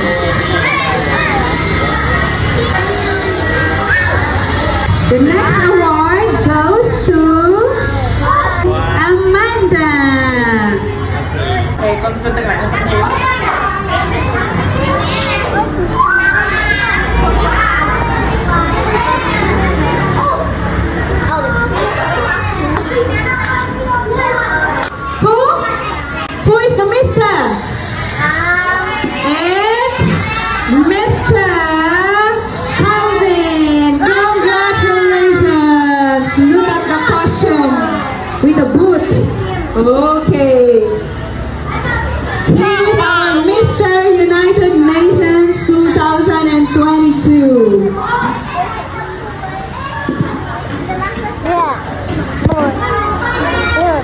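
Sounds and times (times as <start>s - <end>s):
children chattering and calling out: 0.0s - 54.0s.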